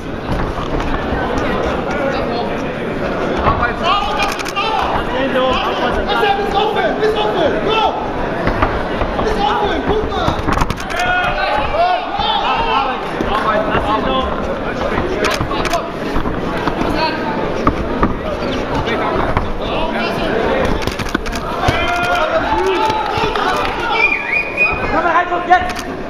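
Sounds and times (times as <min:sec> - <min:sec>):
crowd shouting: 0:03.6 - 0:14.3, 0:19.6 - 0:25.6.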